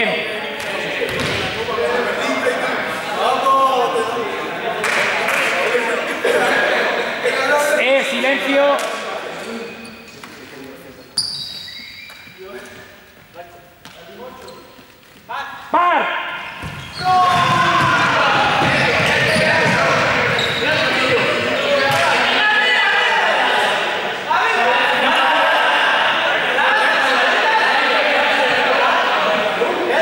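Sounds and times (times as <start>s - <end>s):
low voices: 16.4s - 30.0s
running footsteps in a hall: 16.5s - 22.2s
students shouting: 16.9s - 30.0s.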